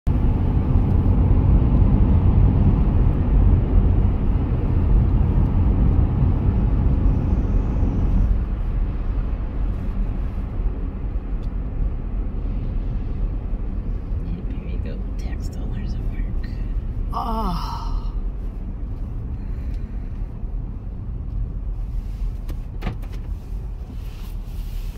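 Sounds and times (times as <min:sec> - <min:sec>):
car road noise rumble: 0:00.1 - 0:24.9.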